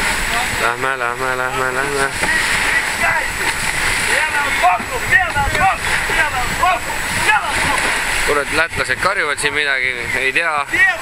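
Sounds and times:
voices shouting across water: 0:00.0 - 0:11.0
wind and water rushing along hull: 0:00.0 - 0:11.0.

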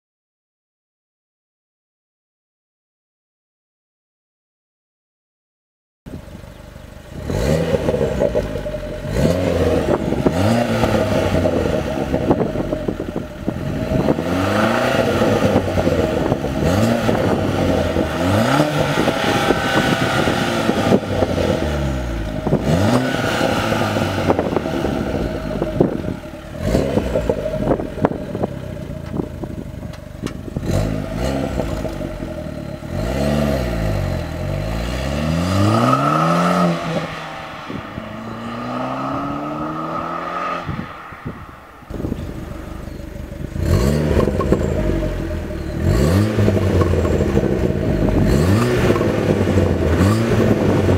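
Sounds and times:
car engine revving: 0:06.4 - 0:50.9.

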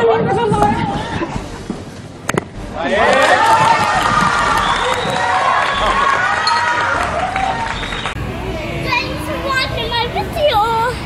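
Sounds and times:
young child talking: 0:08.8 - 0:11.0.

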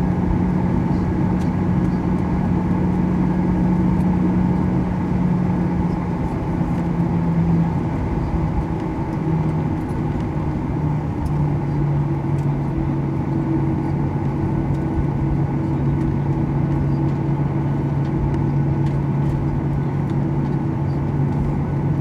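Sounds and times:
jet engines humming in cabin: 0:00.0 - 0:22.0.

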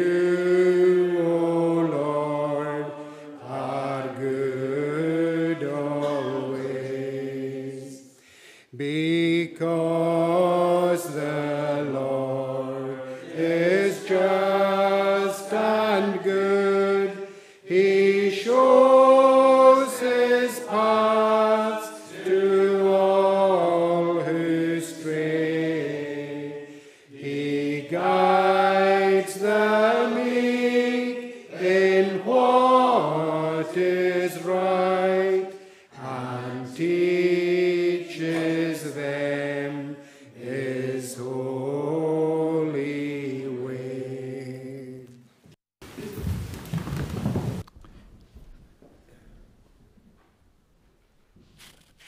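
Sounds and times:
congregation singing unaccompanied: 0:00.0 - 0:08.2, 0:08.8 - 0:45.2.

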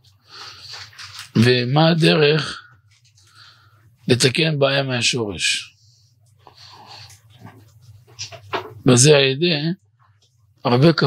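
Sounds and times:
steady low hum: 0:00.0 - 0:11.0
faint breathing: 0:00.2 - 0:00.9, 0:02.5 - 0:04.0, 0:05.7 - 0:07.3.

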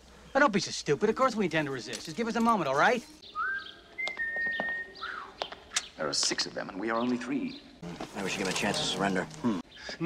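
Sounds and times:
person whistling: 0:03.4 - 0:05.3.

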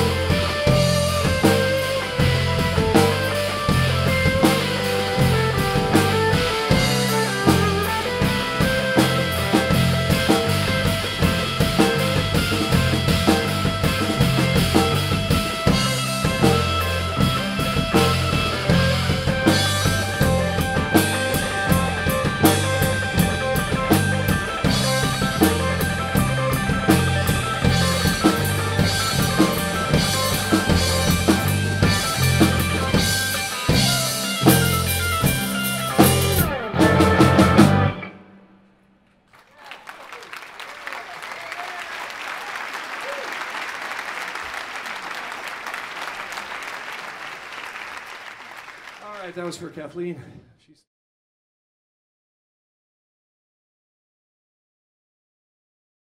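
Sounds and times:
rock band playing: 0:00.0 - 0:38.5
audience applause: 0:39.3 - 0:49.7.

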